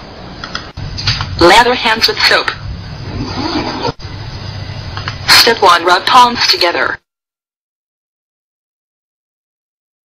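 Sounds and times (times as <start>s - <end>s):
steady low hum: 0.0s - 7.0s.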